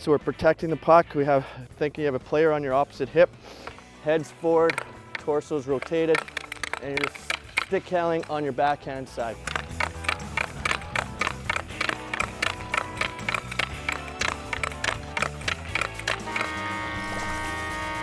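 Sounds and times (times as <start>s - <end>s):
background music with bass: 0.0s - 18.0s
hockey stick tapping puck: 4.5s - 17.6s.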